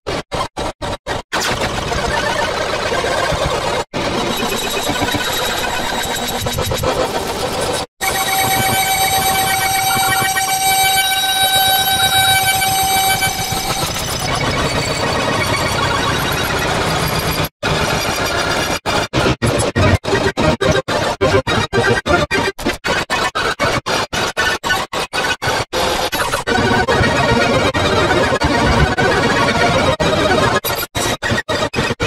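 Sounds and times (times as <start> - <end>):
high held synth tones: 8.0 - 14.4
dense harsh synthesized notes: 8.2 - 14.4, 19.4 - 22.6.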